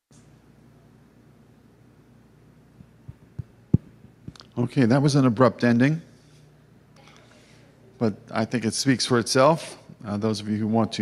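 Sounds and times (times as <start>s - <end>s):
steady low hum: 0.1s - 11.0s
microphone handling thumps: 2.8s - 4.4s.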